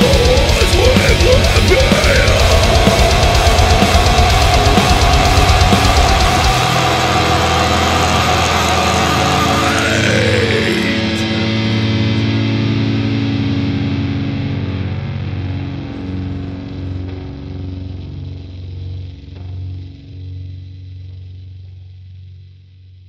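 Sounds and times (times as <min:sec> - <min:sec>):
sustained guitar chord: 0:00.0 - 0:18.4.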